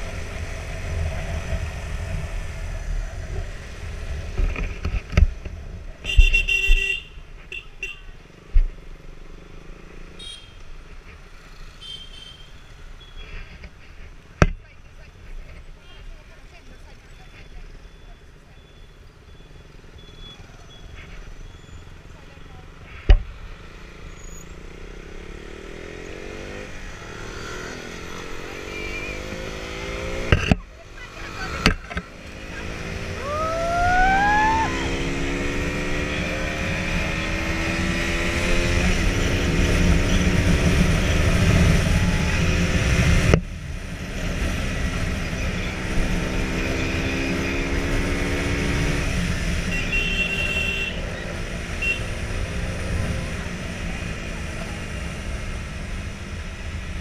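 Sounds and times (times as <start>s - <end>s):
rising whistle: 33.2s - 35.2s.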